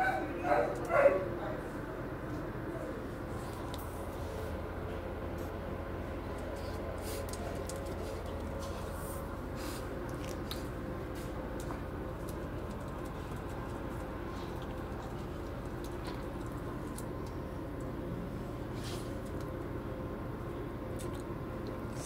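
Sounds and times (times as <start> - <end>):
low machine hum: 0.0 - 22.0
dogs' claws clicking and scuffing: 6.4 - 9.0, 10.1 - 17.4.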